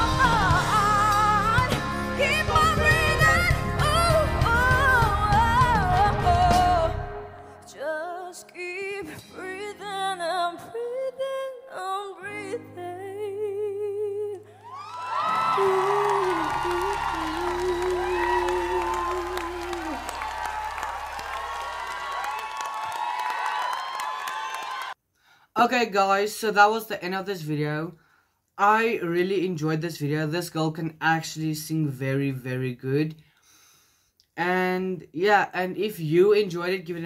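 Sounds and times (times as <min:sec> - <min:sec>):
woman singing with vibrato: 0:00.0 - 0:20.4
audience cheering and whooping: 0:14.6 - 0:25.0.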